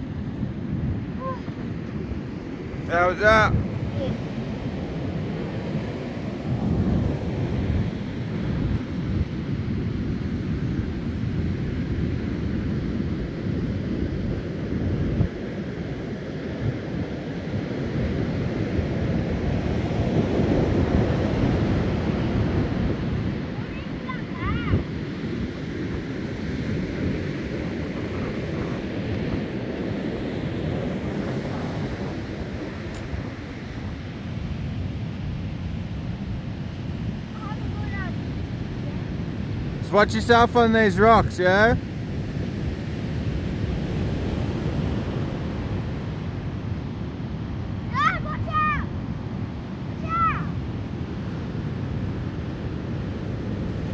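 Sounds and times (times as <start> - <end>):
wind gusting on microphone: 0.0 - 53.9.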